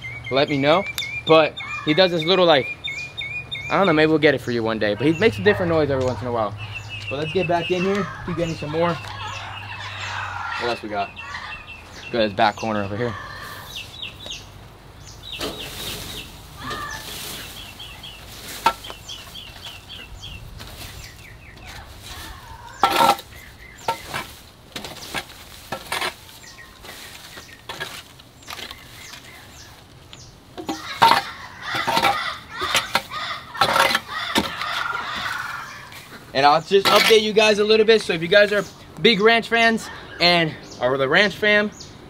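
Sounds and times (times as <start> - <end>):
bird chirping: 0.0 - 42.0
metal rake scraping dry grass: 15.4 - 19.9, 20.5 - 29.7, 30.6 - 37.6.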